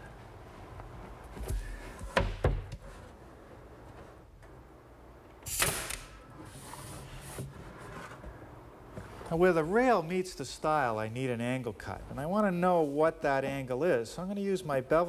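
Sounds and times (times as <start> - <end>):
pneumatic nailer shot: 5.4 - 6.2.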